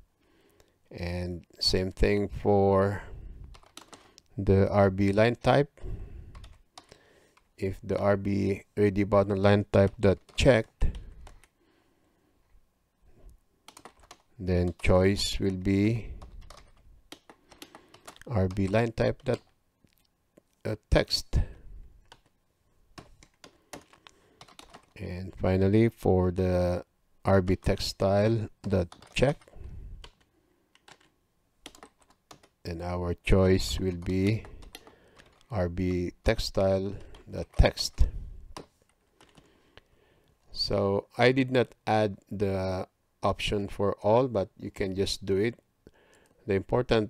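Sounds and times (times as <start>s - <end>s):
computer keyboard keystrokes: 3.5s - 4.2s, 6.4s - 7.0s, 13.7s - 14.8s, 16.2s - 19.6s, 22.0s - 22.3s, 23.0s - 25.0s, 28.6s - 32.6s, 33.9s - 35.5s, 38.6s - 39.5s.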